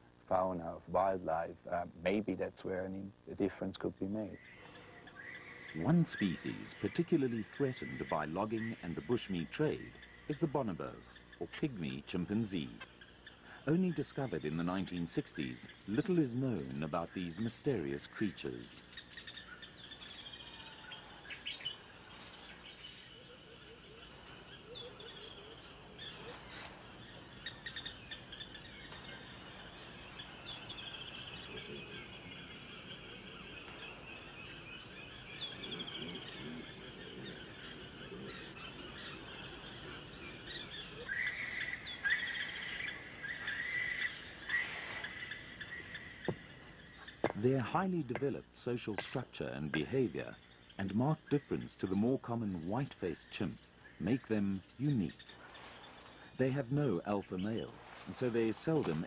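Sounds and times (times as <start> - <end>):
birds chirping and whistling: 4.2 - 59.0
low bird calls: 4.2 - 59.0
short repeated bird calls: 18.7 - 47.6.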